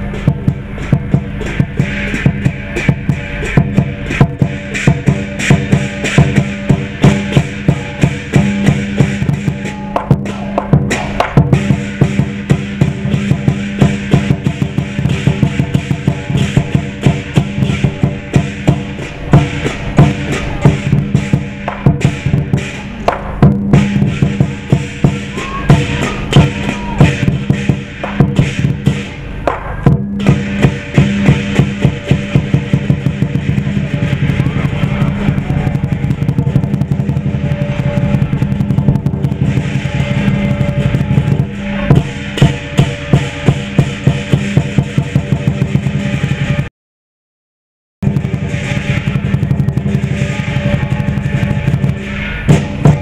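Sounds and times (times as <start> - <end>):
cymbals clashing: 0.0 - 46.7, 48.0 - 53.0
large drum beaten fast: 0.0 - 46.7, 48.0 - 53.0.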